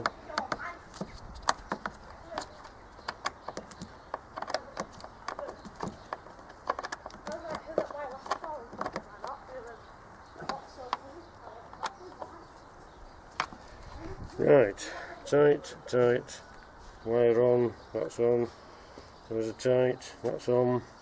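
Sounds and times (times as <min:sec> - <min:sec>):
plastic and metal clicks: 0:00.0 - 0:09.4.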